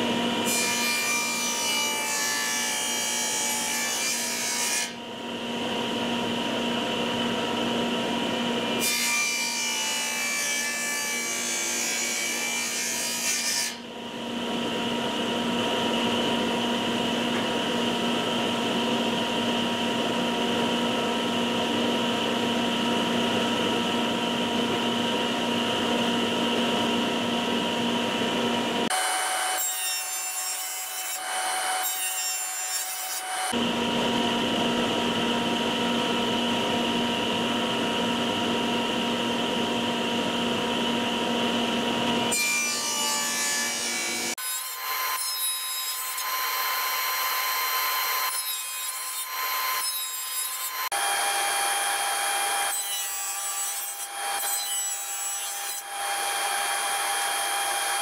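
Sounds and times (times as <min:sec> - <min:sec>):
table saw cutting wood: 0:00.0 - 0:58.0.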